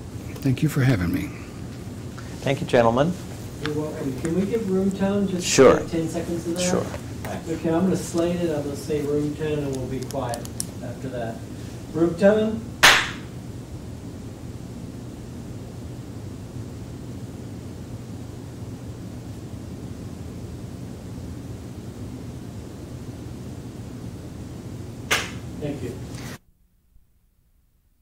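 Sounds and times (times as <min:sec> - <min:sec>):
low hum and hiss: 0:00.0 - 0:28.0.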